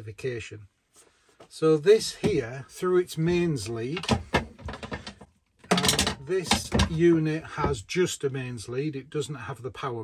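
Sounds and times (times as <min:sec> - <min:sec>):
power cable knocking and rustling: 0:03.9 - 0:07.8.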